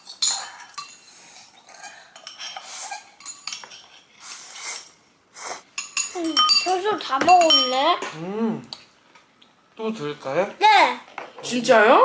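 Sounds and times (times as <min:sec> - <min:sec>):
utensils clinking against bowls: 0:00.0 - 0:04.9, 0:05.7 - 0:08.8.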